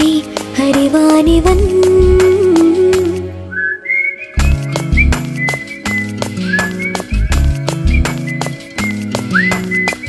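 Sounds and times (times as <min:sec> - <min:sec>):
drums and bass: 0:00.0 - 0:03.2, 0:04.4 - 0:10.0
whistled melody: 0:03.5 - 0:10.0.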